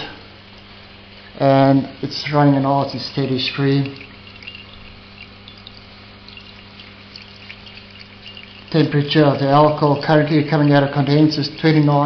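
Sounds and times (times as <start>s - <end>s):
steady low hum: 0.0s - 12.0s
liquid trickling into jug: 0.6s - 12.0s.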